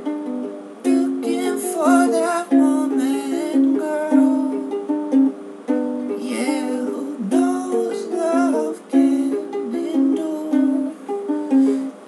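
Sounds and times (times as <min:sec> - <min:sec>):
ukulele strumming chords: 0:00.0 - 0:12.0.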